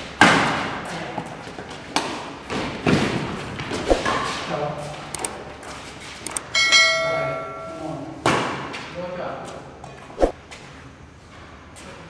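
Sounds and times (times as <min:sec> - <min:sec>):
racket tapping shuttlecock: 0:01.2 - 0:02.6
metallic ringing: 0:06.5 - 0:08.2.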